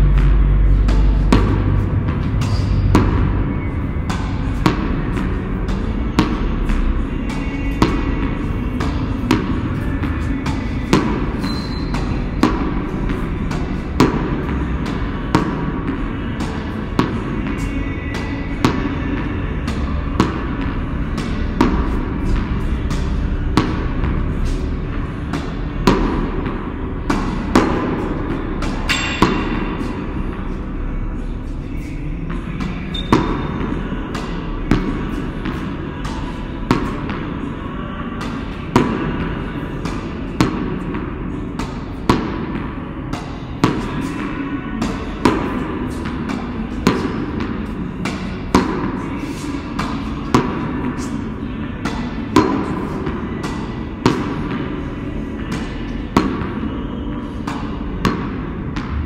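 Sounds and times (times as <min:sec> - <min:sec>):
tennis ball bouncing on concrete: 0:00.0 - 0:37.6, 0:38.2 - 0:59.0
racket striking tennis ball: 0:00.2 - 0:30.6, 0:31.2 - 0:59.0.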